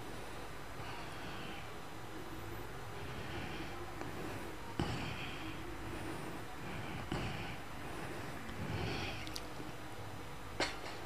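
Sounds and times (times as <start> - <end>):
soft breath sounds: 0.0 - 10.7
low electrical hum: 0.0 - 11.0.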